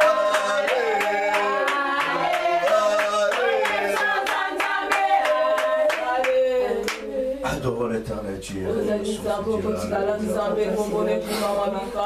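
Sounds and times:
rhythmic hand clapping: 0.0s - 7.1s
congregation singing: 0.0s - 12.0s.

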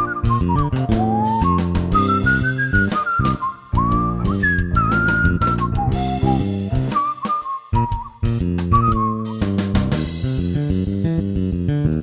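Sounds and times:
whistled melody: 0.0s - 10.1s
band with guitar bass and drums: 0.0s - 10.6s.

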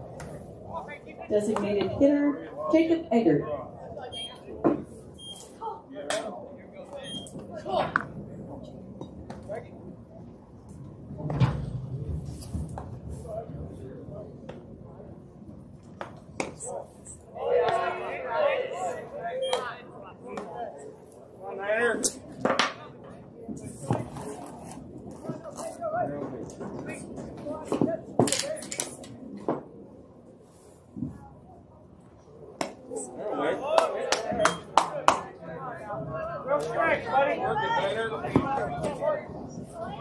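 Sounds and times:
spectators and players chattering: 0.0s - 40.0s.

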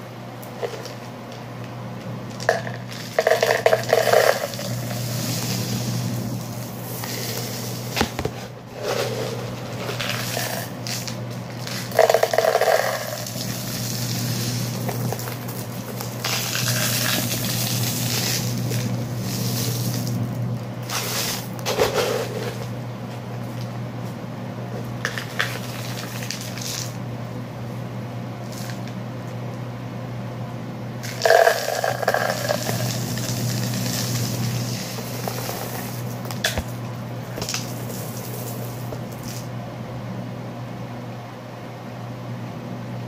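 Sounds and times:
dry beans and rice pouring: 2.3s - 22.7s, 25.0s - 27.0s, 31.0s - 36.8s, 37.4s - 39.5s.

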